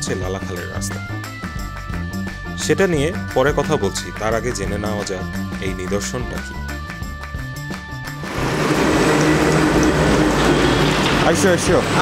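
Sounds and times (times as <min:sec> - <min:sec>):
loud mechanical rattle: 0:08.2 - 0:12.0.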